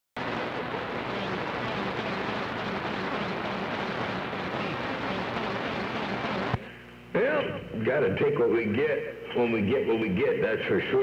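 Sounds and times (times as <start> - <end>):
radio static hiss: 0.2 - 11.0.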